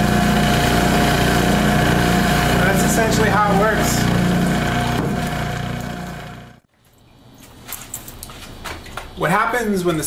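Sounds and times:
centrifuge motor humming: 0.0s - 6.7s.

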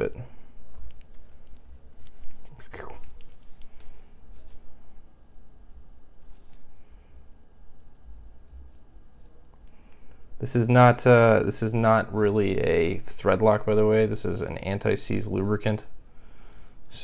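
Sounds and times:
wire brush scratching: 6.0s - 9.7s.

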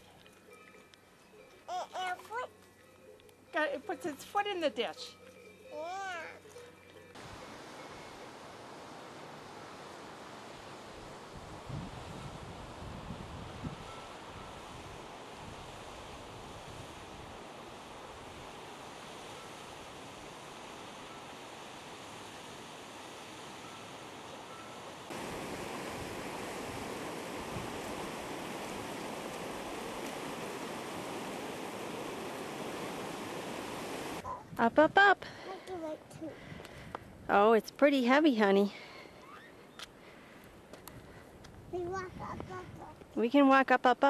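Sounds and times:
mountain stream rushing: 7.2s - 12.8s, 14.1s - 34.2s
wind bumps on microphone: 11.3s - 17.2s, 25.1s - 35.0s, 41.0s - 43.0s.

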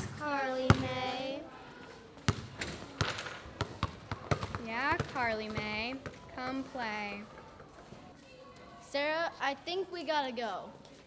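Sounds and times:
basketball bouncing on hard floor: 0.6s - 1.0s, 2.3s - 6.2s.

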